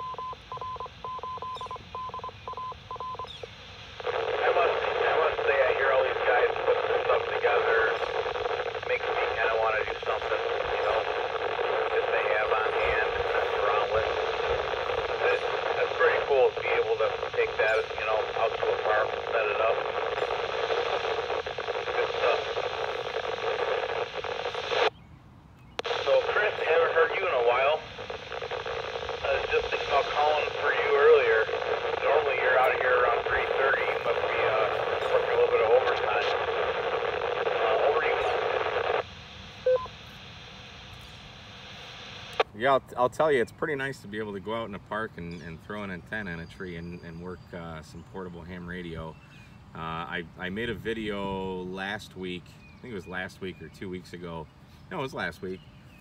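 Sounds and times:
radio hiss: 0.0 - 24.9, 25.8 - 55.6
thin radio speech: 3.9 - 24.9, 25.8 - 42.7.

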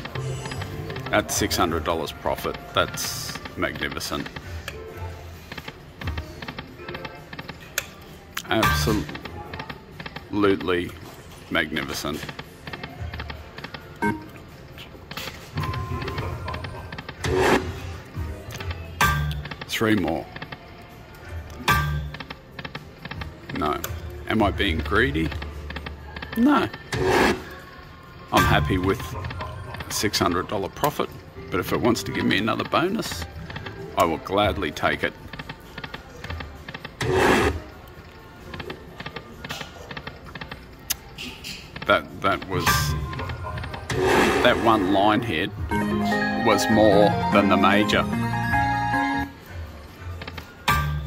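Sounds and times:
slot machine clicks and electronic tones: 0.0 - 4.4, 8.5 - 9.2, 14.0 - 14.5, 28.4 - 31.0, 41.8 - 49.4.

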